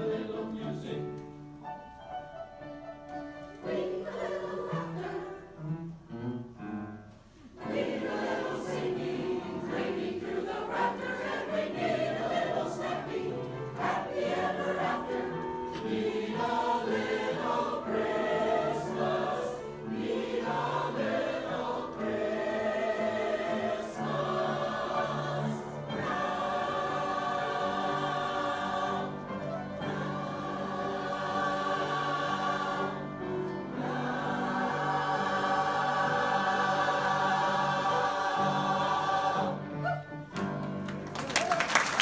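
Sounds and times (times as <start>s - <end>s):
choir singing in harmony: 0.0s - 41.0s.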